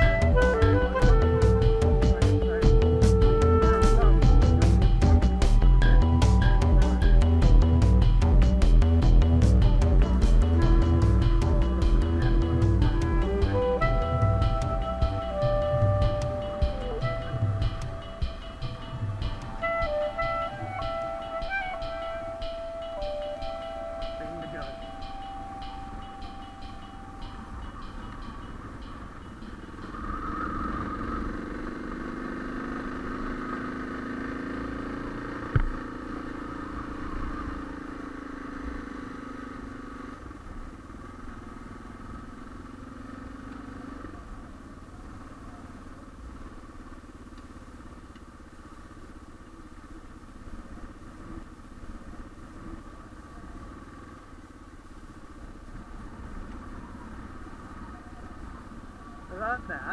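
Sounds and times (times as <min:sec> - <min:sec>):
motorcycle engine on gravel road: 0:00.0 - 0:59.9.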